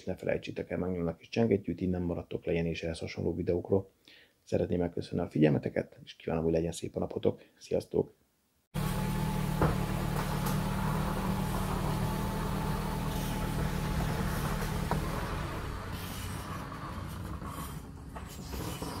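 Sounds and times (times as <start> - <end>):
garage door motor closing: 8.8 - 19.0.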